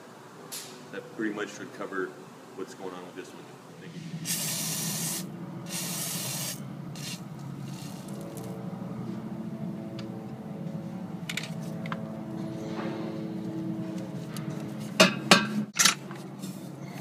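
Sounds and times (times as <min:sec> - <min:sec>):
steady low hum: 0:00.0 - 0:17.0
aerosol spray hissing bursts: 0:04.2 - 0:07.2.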